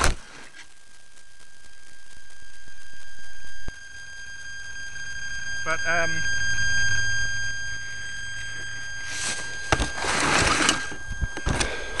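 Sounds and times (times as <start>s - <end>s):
steady high whine: 0.0s - 12.0s.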